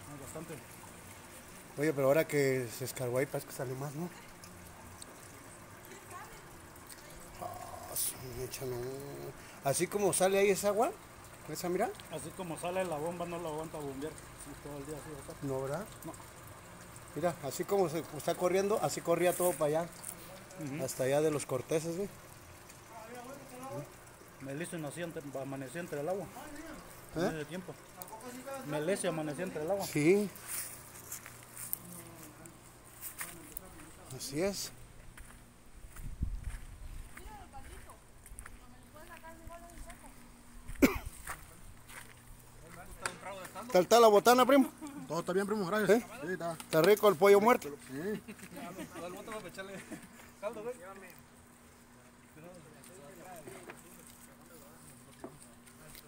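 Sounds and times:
water running steadily: 0.0s - 34.8s, 38.3s - 56.0s.

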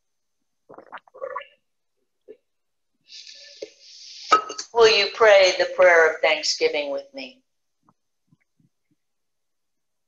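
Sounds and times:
person swallowing: 0.7s - 2.5s.

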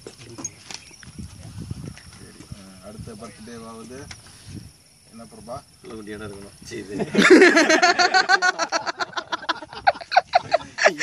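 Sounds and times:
wind rumbling on microphone: 0.0s - 7.2s.

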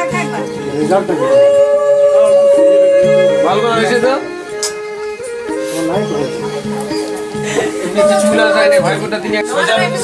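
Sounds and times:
conch shell blown: 1.2s - 4.6s, 8.0s - 9.0s.

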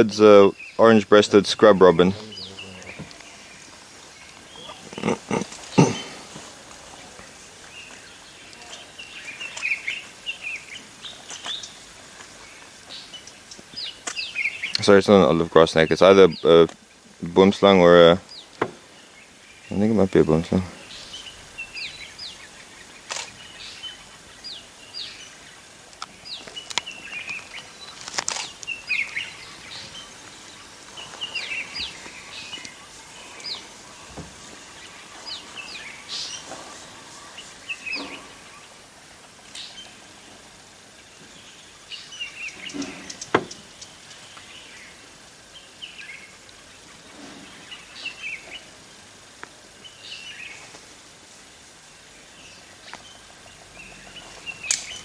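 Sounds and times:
birds chirping: 0.0s - 55.0s
sharp clicks: 23.1s - 23.4s.

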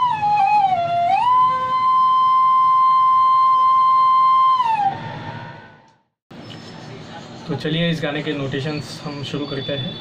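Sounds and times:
bamboo flute note: 0.0s - 5.9s.

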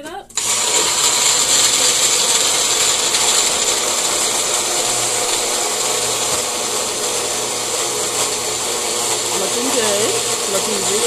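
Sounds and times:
blender running: 0.3s - 11.0s.

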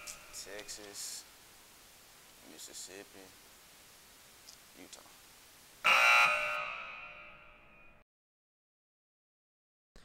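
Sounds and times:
wrong answer buzzer: 5.9s - 7.4s.

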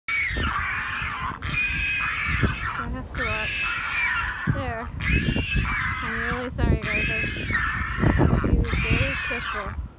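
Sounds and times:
seabirds calling: 0.1s - 9.9s
low rumble of wind or surf: 0.2s - 9.9s.

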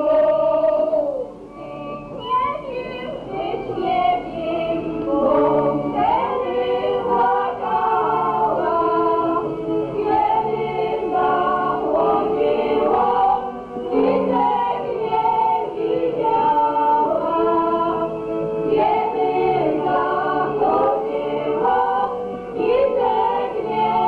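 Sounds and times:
group singing folk song: 0.0s - 24.0s.

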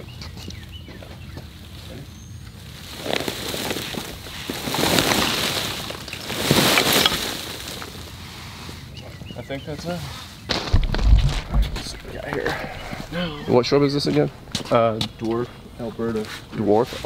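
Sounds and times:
branches and needles rustling: 0.5s - 17.0s
roots tearing: 2.9s - 8.1s, 10.5s - 14.4s.

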